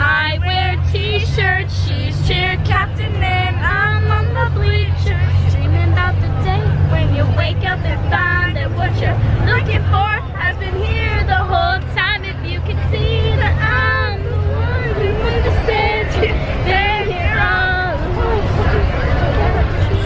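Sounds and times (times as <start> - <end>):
bus rumbling: 0.0 - 20.0
girls chattering: 0.0 - 20.0
girls singing: 0.0 - 20.0.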